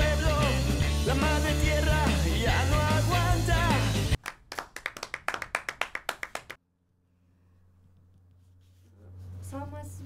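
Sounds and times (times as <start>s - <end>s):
rapid hand clapping: 4.2s - 6.6s.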